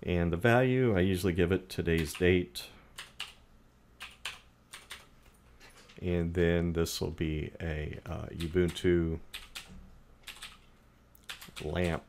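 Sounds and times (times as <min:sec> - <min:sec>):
keyboard keystrokes: 0:08.4 - 0:10.6, 0:11.2 - 0:12.0.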